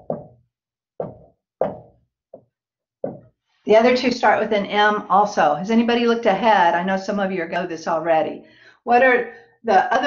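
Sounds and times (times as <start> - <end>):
marker knocking on whiteboard: 0.0 - 0.4, 1.0 - 3.4.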